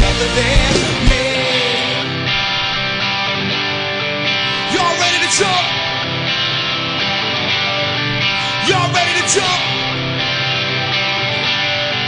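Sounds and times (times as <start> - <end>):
electric guitar chords ringing: 0.0 - 12.0
rock band playing live: 0.0 - 12.0.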